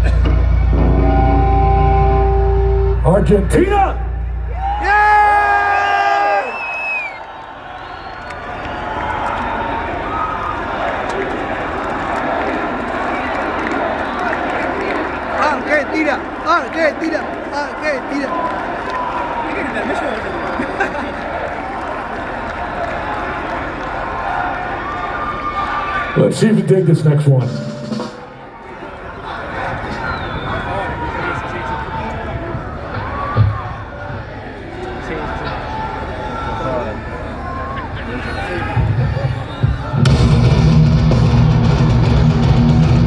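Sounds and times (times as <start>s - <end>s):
crowd cheering and shouting: 0.0s - 43.0s
long held shout: 4.5s - 7.3s.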